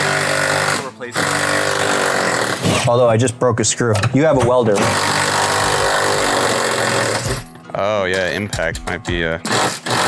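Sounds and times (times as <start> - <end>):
power tool running: 0.0 - 2.9, 4.8 - 7.5, 9.4 - 10.0.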